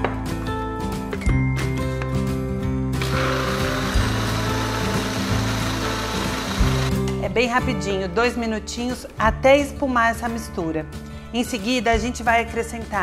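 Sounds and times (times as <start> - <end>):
background music: 0.0 - 13.0
blender running: 3.0 - 7.0.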